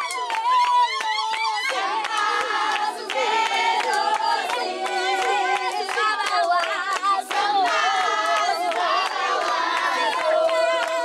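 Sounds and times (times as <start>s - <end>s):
hands clapping in rhythm: 0.0s - 11.0s
young voices singing together: 0.0s - 11.0s.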